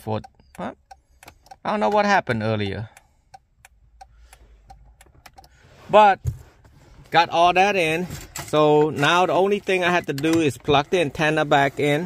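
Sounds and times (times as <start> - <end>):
man talking: 0.0 - 0.8, 1.6 - 3.0, 5.9 - 6.3, 7.1 - 12.0.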